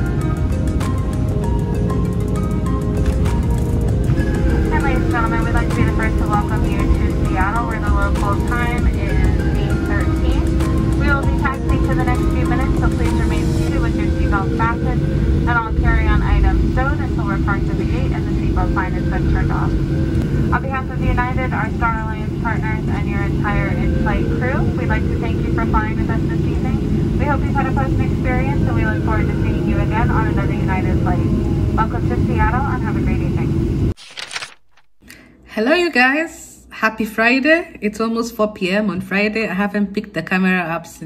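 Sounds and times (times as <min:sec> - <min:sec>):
jet engine rumble: 0:00.0 - 0:34.0.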